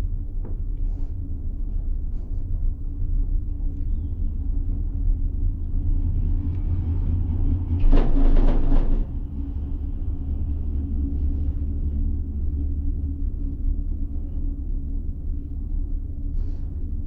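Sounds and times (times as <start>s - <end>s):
gondola cabin rumbling on rope: 7.0s - 9.4s.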